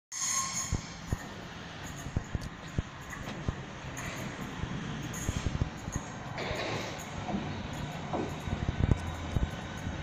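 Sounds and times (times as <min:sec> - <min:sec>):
high-pitched squealing ring: 0:00.1 - 0:03.2, 0:03.8 - 0:09.9
train rumble: 0:00.2 - 0:10.0.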